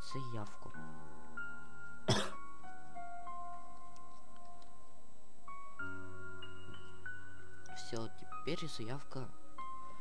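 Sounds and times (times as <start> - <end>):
person coughing: 2.1 - 2.4.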